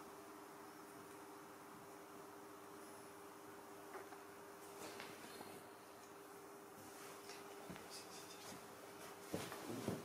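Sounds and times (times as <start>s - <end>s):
steady low hum: 0.0s - 10.0s
monkeys scratching and rustling: 7.1s - 8.6s.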